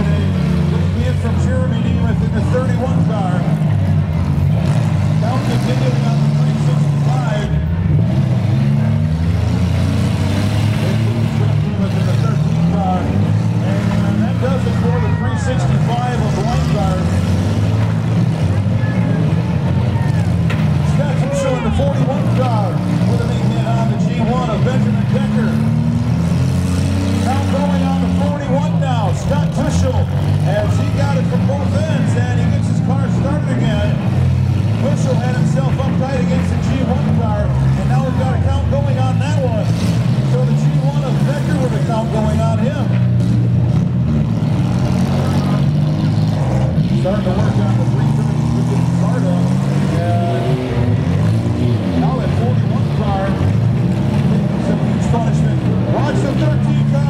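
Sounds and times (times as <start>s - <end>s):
car engines revving: 0.0s - 57.0s
voices shouting: 14.4s - 15.9s.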